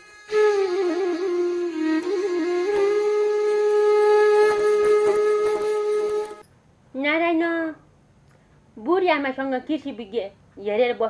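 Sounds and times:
flute holding long note: 0.0s - 6.4s.

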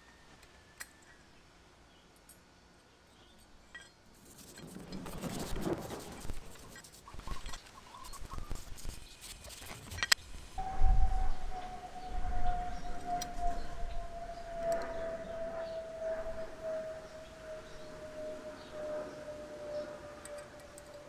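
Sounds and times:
sustained falling tone: 10.4s - 21.0s.

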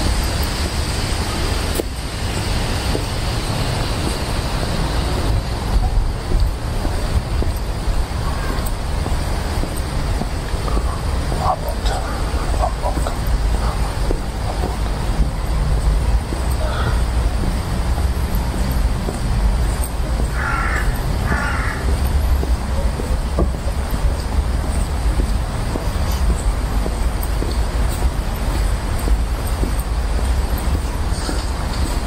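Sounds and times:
distant road traffic: 0.0s - 32.0s
faint voices: 0.0s - 32.0s.

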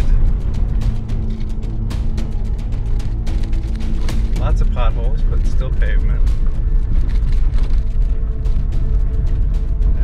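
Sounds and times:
background music: 0.0s - 10.0s
road rumble inside car: 0.0s - 10.0s
small clicks and rattles: 6.9s - 8.8s.

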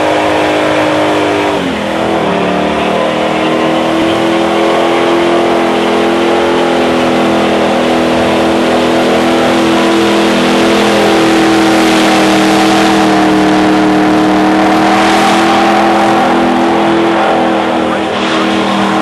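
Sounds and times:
car engine revving high: 0.0s - 19.0s.

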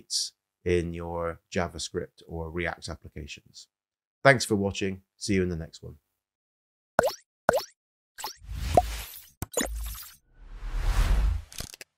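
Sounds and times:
plops with falling pitch: 7.0s - 8.4s
short rising tone: 10.3s - 11.5s
whoosh: 10.3s - 11.6s.

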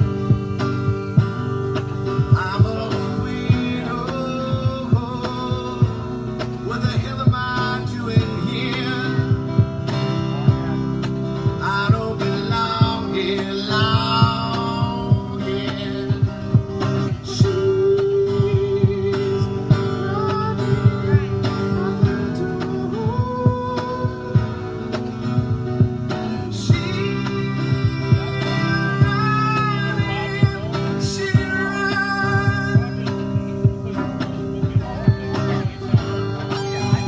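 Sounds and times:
electric guitar: 0.0s - 37.0s
man singing: 0.0s - 37.0s.

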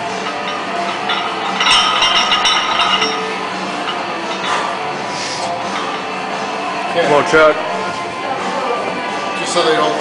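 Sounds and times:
weight plates clinking and rattling: 0.0s - 4.9s, 5.6s - 6.2s.

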